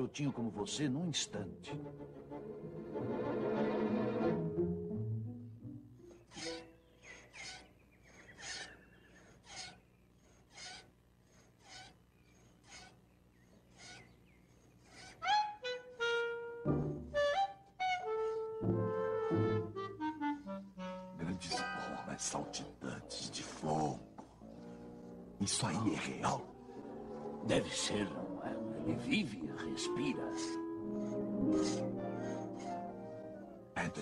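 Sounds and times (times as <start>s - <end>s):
orchestral film score: 0.0s - 6.0s, 16.6s - 24.0s, 24.8s - 34.0s
staccato orchestral notes: 1.6s - 5.7s
woodwind and brass phrases: 15.2s - 21.5s, 26.9s - 34.0s.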